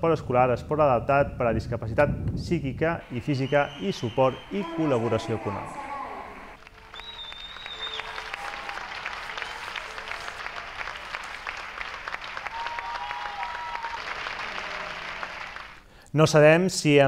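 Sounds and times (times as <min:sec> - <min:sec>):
audience applauding: 0:03.0 - 0:15.9.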